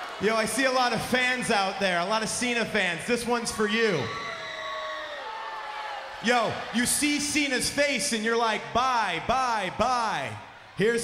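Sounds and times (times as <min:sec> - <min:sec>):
arena crowd voices: 0:00.0 - 0:11.0.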